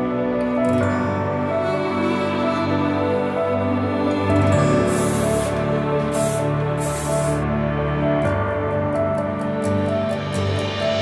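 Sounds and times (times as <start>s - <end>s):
soft background music: 0.0s - 11.0s
hairspray can hissing: 4.5s - 7.5s.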